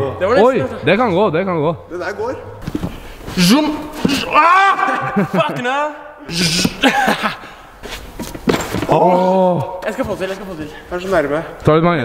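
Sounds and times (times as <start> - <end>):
man laughing: 4.1 - 7.6.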